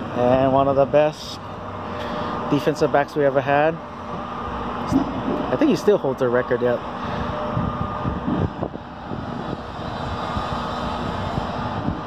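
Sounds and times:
outdoor rumble: 0.0s - 12.0s
wind buffeting microphone: 4.8s - 5.8s, 6.9s - 12.0s.

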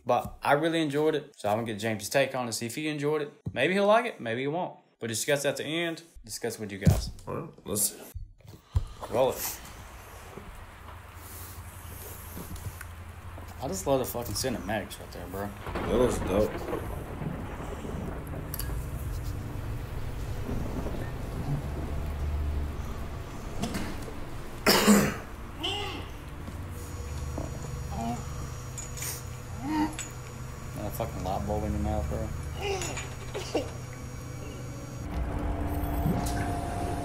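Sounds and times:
steady hum: 8.9s - 37.0s
steady rain: 9.1s - 37.0s
low rumbling thunder: 9.9s - 28.7s.

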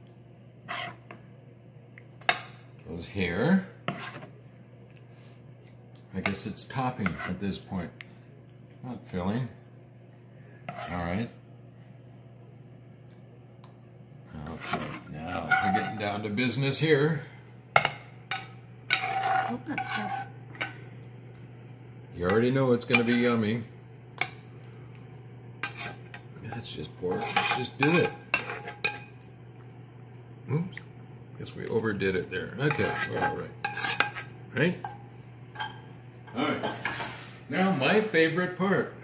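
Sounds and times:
metal spoon scraping a pan: 0.7s - 1.2s, 3.8s - 4.3s, 6.2s - 7.6s, 10.7s - 11.1s, 14.4s - 16.6s, 17.8s - 20.8s, 22.3s - 23.4s, 25.6s - 29.1s, 32.6s - 34.4s
sloppy wet food noise: 18.3s - 23.5s, 24.1s - 34.4s.

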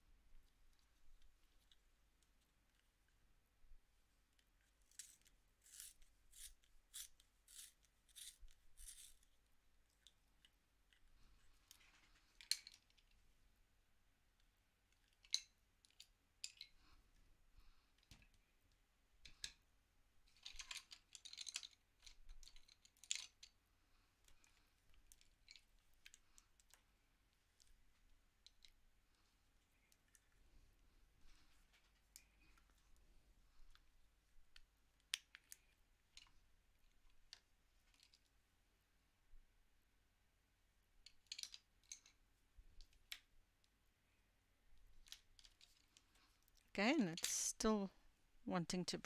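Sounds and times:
pencil sharpener scraping: 4.9s - 9.3s.

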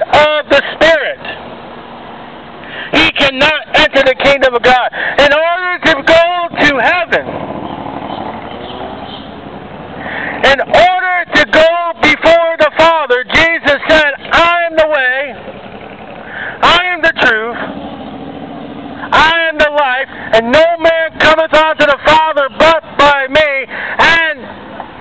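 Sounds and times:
man preaching loudly: 0.0s - 1.4s, 2.9s - 7.3s, 10.4s - 15.4s, 16.6s - 17.7s, 19.0s - 24.5s
traffic noise: 0.0s - 25.0s
vehicle engine: 0.0s - 25.0s.

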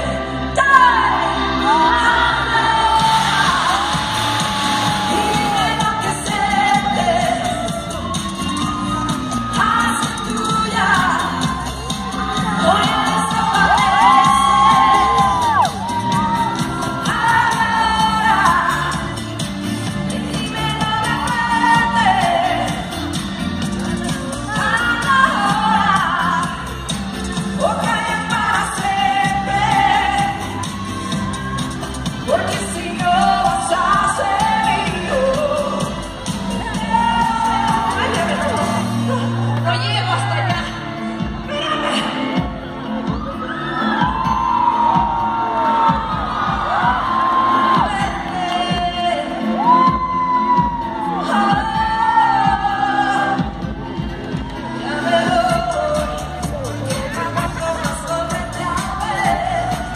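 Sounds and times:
woman singing into microphone: 0.0s - 19.2s, 19.8s - 22.9s, 24.1s - 26.8s, 27.6s - 42.6s, 43.8s - 59.9s
crowd whooping and cheering: 0.0s - 59.9s
amplified band with steady beat: 2.9s - 39.5s.

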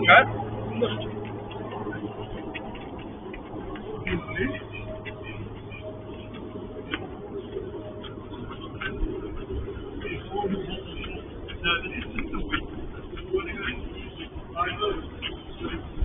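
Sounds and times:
faint voices of people talking: 0.0s - 16.0s
steady low hum: 0.0s - 16.0s.

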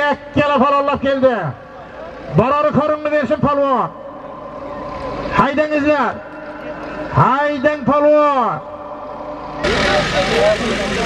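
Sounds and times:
steady noisy rush: 0.0s - 11.0s
distant voices calling: 3.0s - 11.0s.

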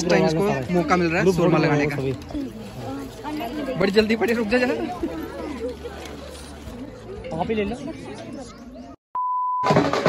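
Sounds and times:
voices chattering: 0.0s - 9.0s
short electronic beep: 9.2s - 9.7s.

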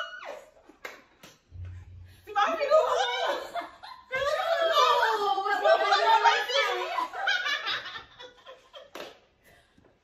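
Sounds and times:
speech: 2.2s - 7.4s
women laughing: 2.7s - 9.0s.

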